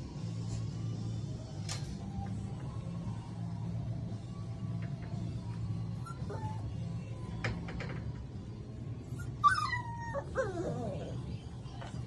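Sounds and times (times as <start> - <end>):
puppy whimpering: 5.9 - 6.8, 9.1 - 11.3.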